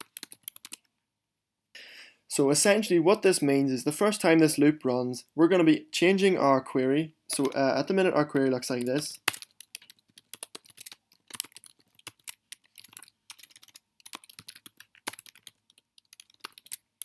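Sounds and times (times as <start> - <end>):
computer keyboard typing: 0.0 - 0.9, 7.3 - 7.6, 8.3 - 17.0.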